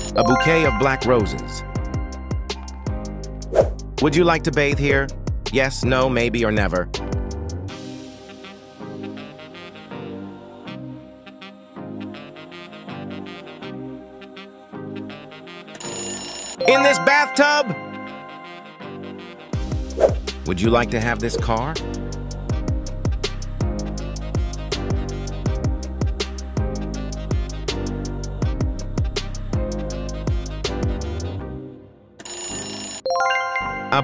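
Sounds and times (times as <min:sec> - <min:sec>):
upbeat background music: 0:00.0 - 0:31.6, 0:33.1 - 0:34.0
ringing bell sound effect: 0:00.1 - 0:02.5, 0:16.0 - 0:19.1, 0:32.2 - 0:34.0
narrator speaking: 0:00.2 - 0:01.7, 0:16.6 - 0:18.1, 0:20.5 - 0:21.8.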